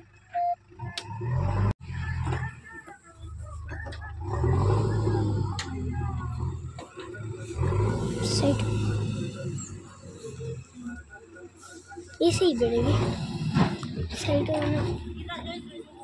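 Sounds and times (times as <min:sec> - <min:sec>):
diesel engine running: 0:00.0 - 0:16.0.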